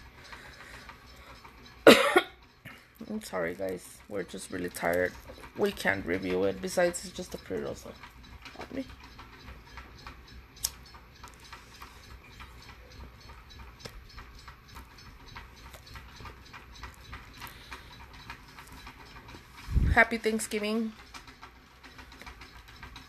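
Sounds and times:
sharp click: 10.6s - 10.8s.

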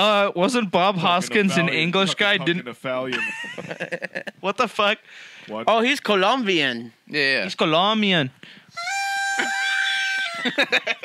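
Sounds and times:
party blower tone: 8.7s - 10.7s.

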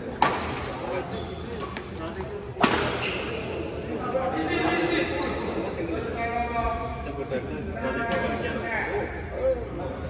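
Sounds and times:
voices in a hall: 0.0s - 10.0s.

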